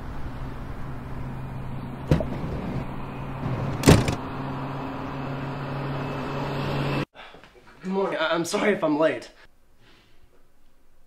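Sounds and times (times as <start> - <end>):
car engine idling: 0.0 - 6.5
car door thuds: 2.1 - 2.8, 3.5 - 4.2.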